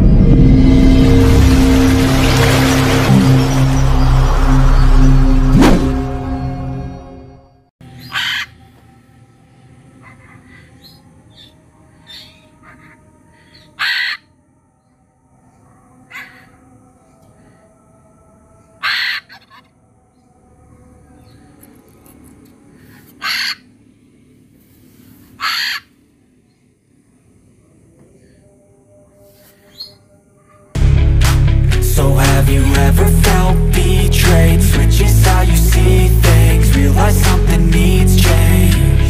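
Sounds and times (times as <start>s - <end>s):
macaw squawking: 8.0s - 8.6s, 10.0s - 13.0s, 13.6s - 14.3s, 18.8s - 19.7s, 23.0s - 23.7s, 25.4s - 26.0s
faint bird chirps: 9.6s - 17.2s, 29.2s - 30.7s.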